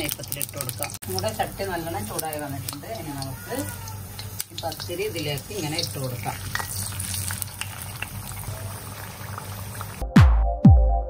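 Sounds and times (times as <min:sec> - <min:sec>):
dough sizzling in hot oil: 0:00.0 - 0:10.0.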